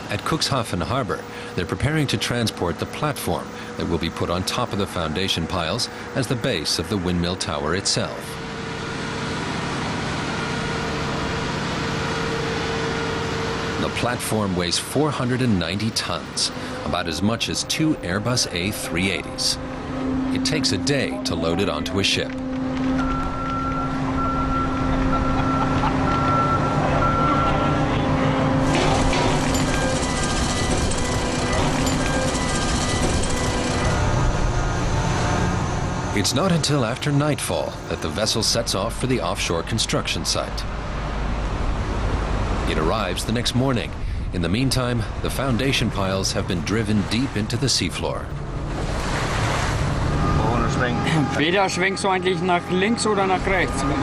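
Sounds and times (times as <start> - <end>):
people talking: 0.0 - 8.4, 13.8 - 19.6, 20.3 - 22.4, 36.2 - 40.7, 42.7 - 48.4, 50.3 - 54.0
heavy machinery droning: 0.0 - 54.0
high warning beeper: 14.9 - 39.5, 50.1 - 54.0.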